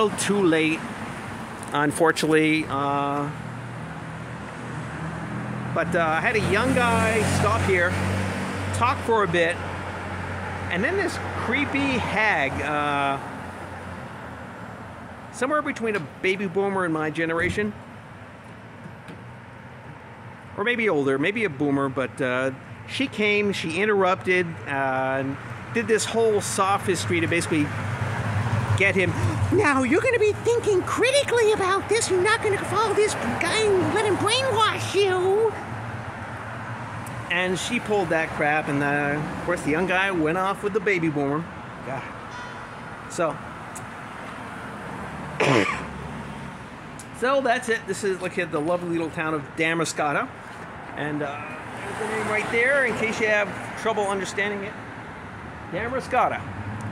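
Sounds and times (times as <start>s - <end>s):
low street background: 0.0s - 56.9s
traffic hum: 0.0s - 56.9s
man coughing: 45.4s - 46.0s.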